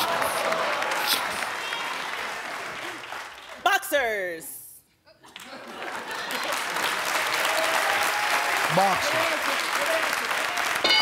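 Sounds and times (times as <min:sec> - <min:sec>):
audience applauding and cheering: 0:00.0 - 0:03.6, 0:05.4 - 0:11.0.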